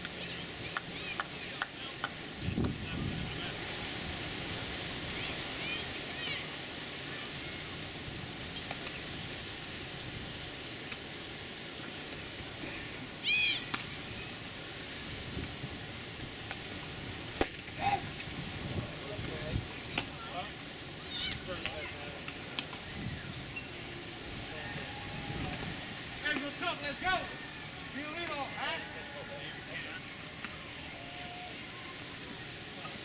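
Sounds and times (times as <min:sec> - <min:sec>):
faint distant voices: 0:00.0 - 0:09.6, 0:11.6 - 0:33.0
open-air hiss: 0:00.0 - 0:33.0.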